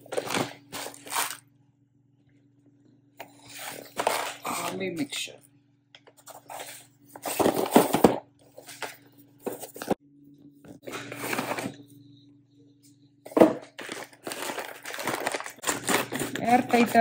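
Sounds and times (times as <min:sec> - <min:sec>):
foil pouch crinkling: 0:00.1 - 0:01.4, 0:13.7 - 0:17.0
cardboard box tearing: 0:13.8 - 0:16.3.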